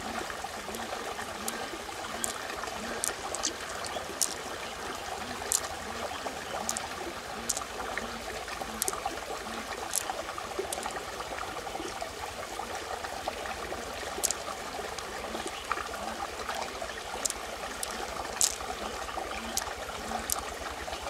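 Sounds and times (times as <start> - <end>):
pearls clicking together: 0.0 - 12.0, 13.6 - 21.0
stream water trickling: 0.0 - 21.0.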